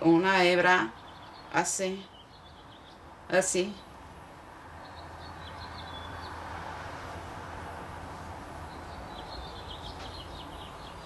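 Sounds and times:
steady background noise: 0:00.0 - 0:11.0
high bird chirps: 0:08.7 - 0:11.0.

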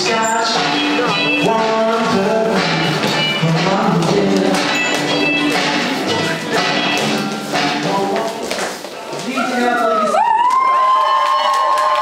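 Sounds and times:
slow blues song: 0:00.0 - 0:08.8
feet tapping on wooden floor: 0:03.0 - 0:09.4.

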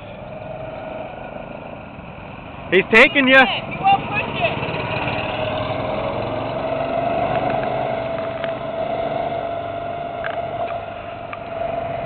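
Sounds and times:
go-kart engines running: 0:00.0 - 0:12.0.

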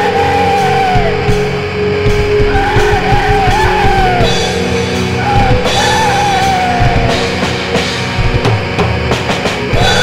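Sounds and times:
black metal music: 0:00.0 - 0:10.0
high wavering lead guitar: 0:00.0 - 0:10.0.

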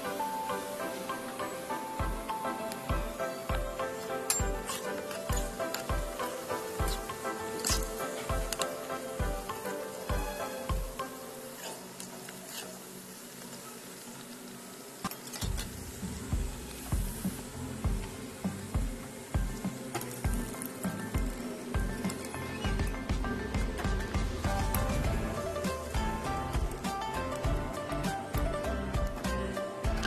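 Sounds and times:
background music with steady tones: 0:00.0 - 0:30.0
batter sizzling in hot oil: 0:00.0 - 0:30.0
bass beat: 0:16.2 - 0:19.6, 0:22.7 - 0:30.0.

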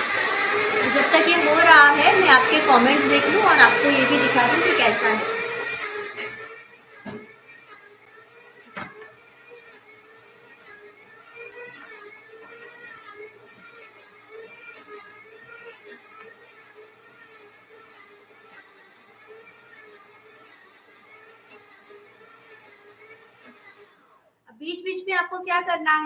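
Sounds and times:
stand mixer motor whine: 0:00.0 - 0:24.3.

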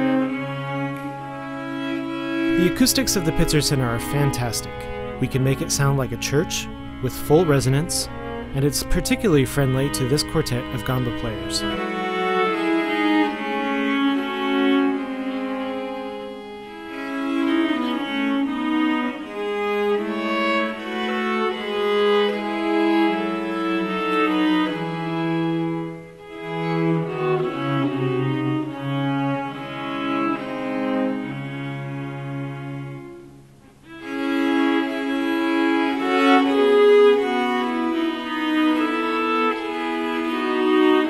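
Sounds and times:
viols playing slow chords: 0:00.0 - 0:41.0.

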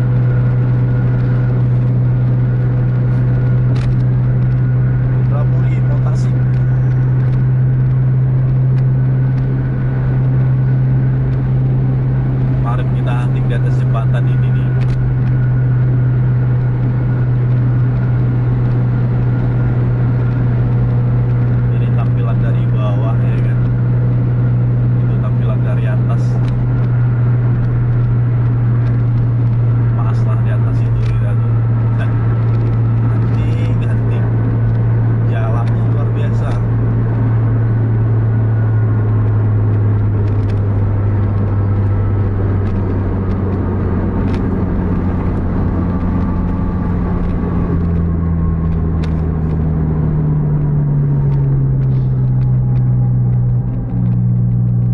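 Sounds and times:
vehicle engine and road drone: 0:00.0 - 0:54.9.

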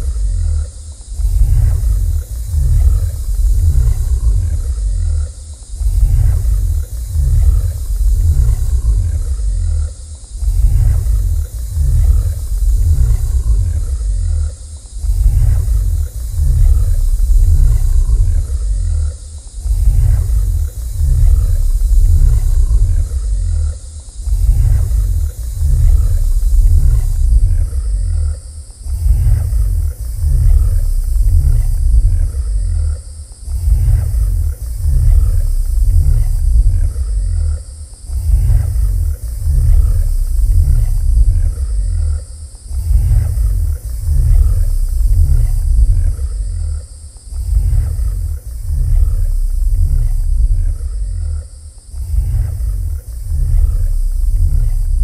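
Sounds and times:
electronic music with pulsing bass: 0:00.0 - 0:55.0.

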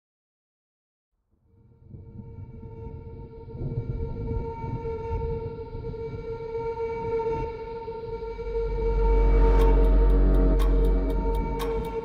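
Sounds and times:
sustained tone: 0:02.4 - 0:12.0
low rough rumble: 0:07.4 - 0:12.0.

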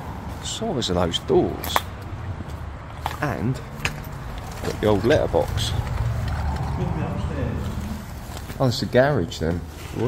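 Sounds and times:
steady low rumble: 0:03.6 - 0:09.0.

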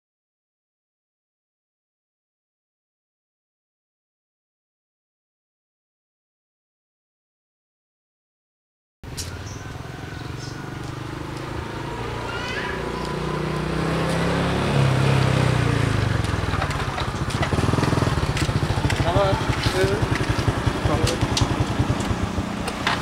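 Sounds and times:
small motorcycle engine: 0:09.3 - 0:23.0.

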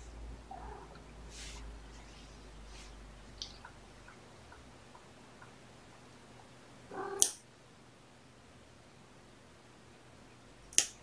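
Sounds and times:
kitten meowing: 0:06.9 - 0:07.4
faint small clicks: 0:10.7 - 0:11.0
nail clipper click: 0:10.7 - 0:11.0.

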